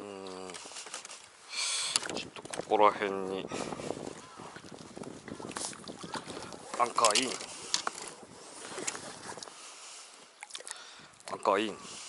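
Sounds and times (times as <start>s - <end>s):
water noise: 0.0s - 12.0s
wind: 0.0s - 12.0s.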